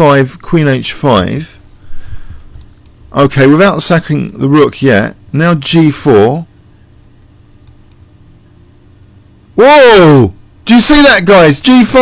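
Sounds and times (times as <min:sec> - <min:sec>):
low electrical hum: 0:00.0 - 0:12.0
faint clicks: 0:07.2 - 0:08.1.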